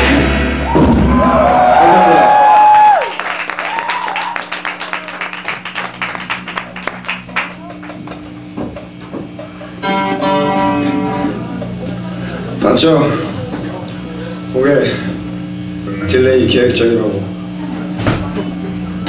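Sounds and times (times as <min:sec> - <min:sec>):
low amplifier hum: 0:00.0 - 0:19.0
guitar chord ringing: 0:09.6 - 0:12.3, 0:15.5 - 0:17.4.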